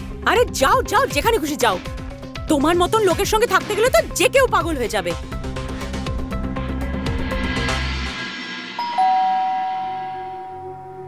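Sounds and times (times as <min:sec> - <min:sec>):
low sustained drone: 0:06.4 - 0:11.0
held high tone: 0:08.8 - 0:11.0.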